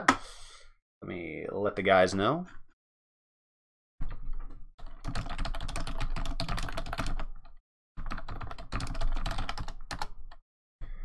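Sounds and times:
computer keyboard typing: 4.0 - 10.4.

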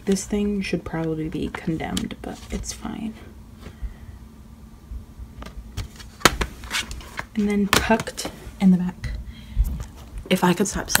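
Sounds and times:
palettes rustling in a drawer: 0.0 - 3.1, 5.4 - 8.4.

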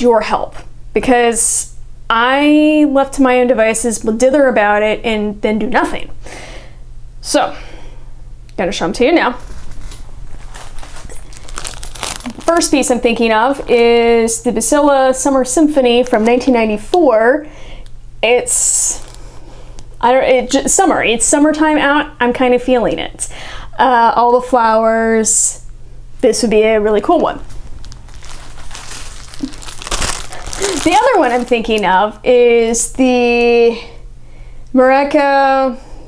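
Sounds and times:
plastic packaging crinkling: 9.4 - 14.1, 18.5 - 20.0, 27.2 - 32.2.

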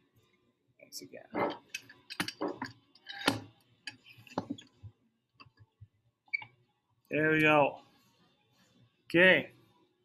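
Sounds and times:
clamps clicking and knocking: 1.4 - 4.8.

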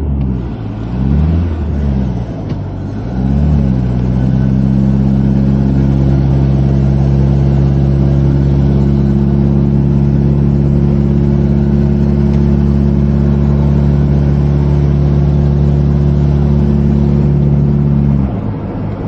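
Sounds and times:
car engine under load: 0.0 - 19.0.

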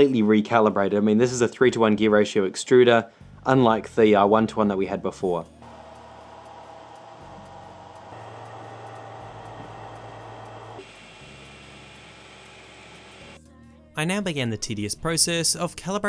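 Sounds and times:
printer fans and motors humming: 5.6 - 13.4.

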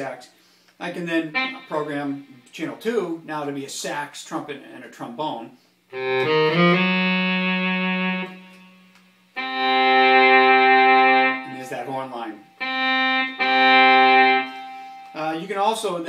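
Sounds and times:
synthesized horn section chords: 0.9 - 2.5, 5.9 - 15.5.

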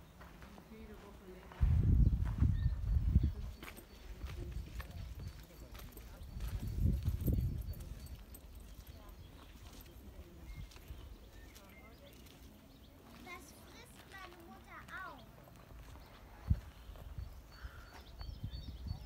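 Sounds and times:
faint footsteps on path: 0.0 - 19.0
wind buffeting microphone: 1.5 - 9.4, 15.8 - 19.0.

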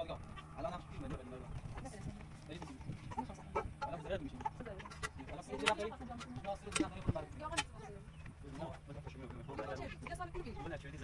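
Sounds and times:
chickens clucking: 0.0 - 11.0
voices: 0.0 - 11.0.

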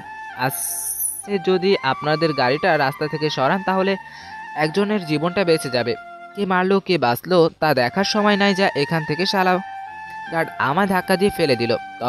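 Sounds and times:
soft background music: 0.0 - 12.0
person speaking: 0.4 - 4.0.

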